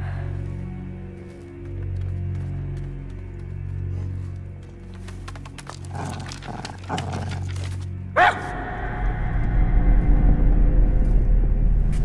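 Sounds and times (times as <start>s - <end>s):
low music drone: 0.0s - 12.0s.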